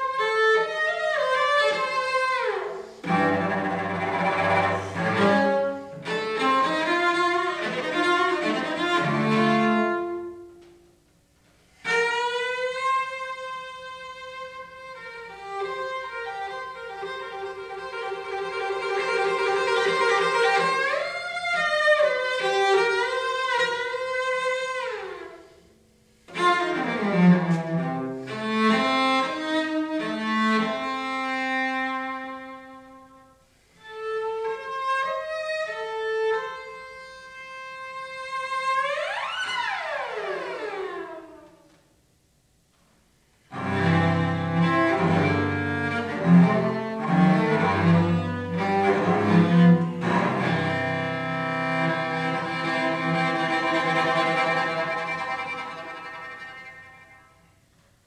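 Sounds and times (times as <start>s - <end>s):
high bowed cello note: 1.4s - 10.6s, 43.5s - 57.6s.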